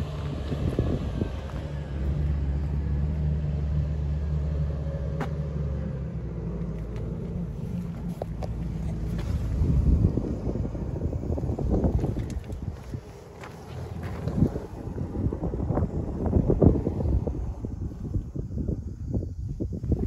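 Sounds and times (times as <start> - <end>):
wind buffeting microphone: 0.0 - 3.0, 7.2 - 20.0
vehicle engine idling: 0.0 - 20.0.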